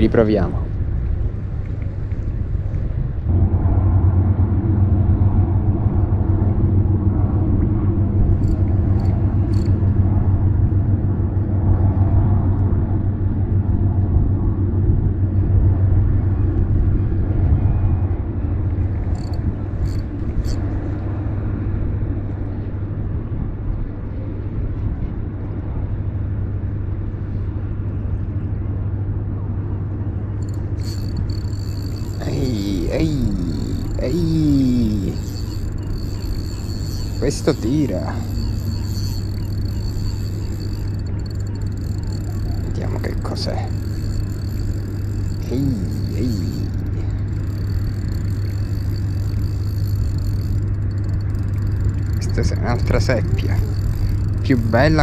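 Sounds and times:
low engine hum: 0.0s - 55.0s
faint high clicks: 18.6s - 20.8s, 30.4s - 55.0s.

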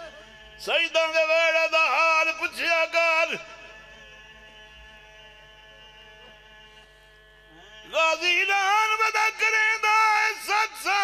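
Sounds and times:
man's amplified voice crying out: 0.0s - 3.5s.

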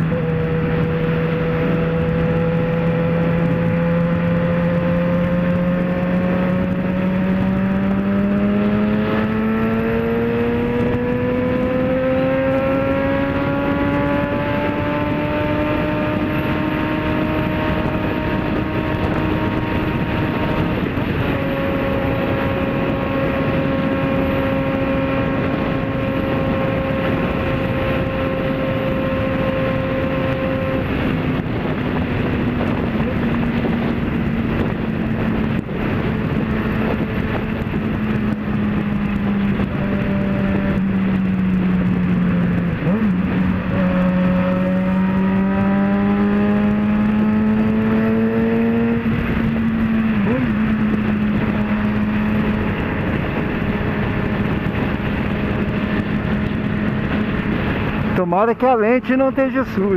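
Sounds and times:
motorcycle engine cruising: 0.0s - 59.9s
road noise: 0.0s - 59.9s
wind noise: 0.0s - 59.9s.

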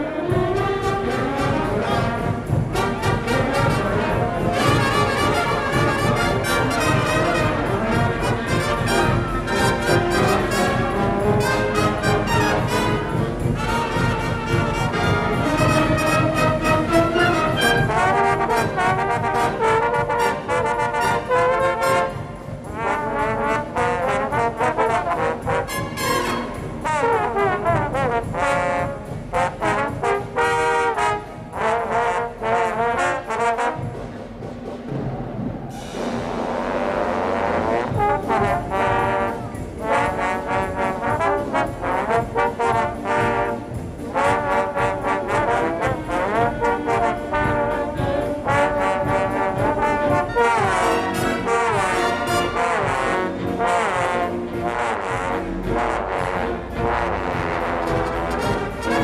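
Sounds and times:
trombones playing glissandos: 0.0s - 34.5s, 35.7s - 59.0s
concert band accompaniment: 0.0s - 59.0s.

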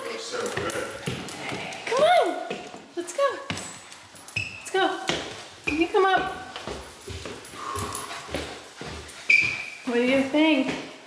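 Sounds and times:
footsteps on wooden stairs: 5.0s - 11.0s.

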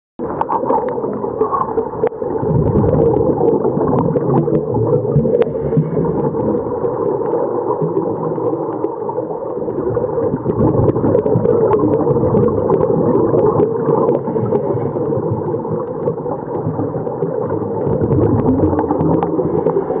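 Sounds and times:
muffled underwater rumble: 0.2s - 20.0s
regulator bubbles hissing: 0.2s - 20.0s.

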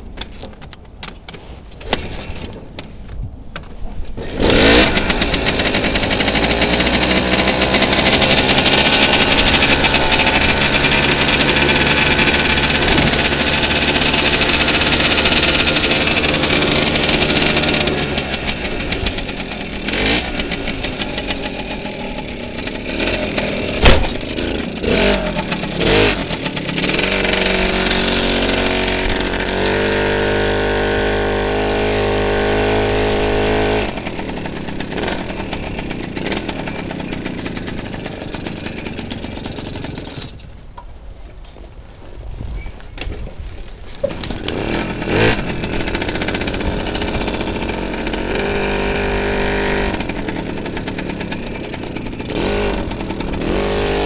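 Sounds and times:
moped engine running: 4.2s - 40.4s, 44.0s - 54.0s.

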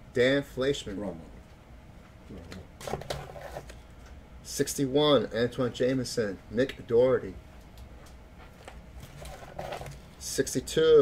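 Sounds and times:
trading cards rustling: 8.5s - 10.1s.

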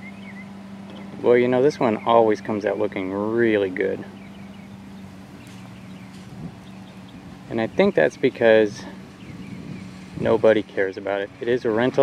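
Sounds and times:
faint bird chirps: 0.0s - 1.2s, 4.0s - 8.3s
steady low hum: 0.0s - 12.0s.

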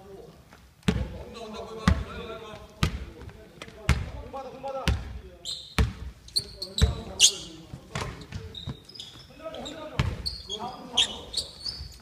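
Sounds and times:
basketball bouncing on wooden floor: 0.8s - 1.2s, 1.8s - 2.1s, 2.8s - 4.2s, 4.8s - 5.1s, 5.8s - 6.1s, 6.8s - 9.2s, 10.0s - 10.4s
short high squeaks: 8.5s - 12.0s.

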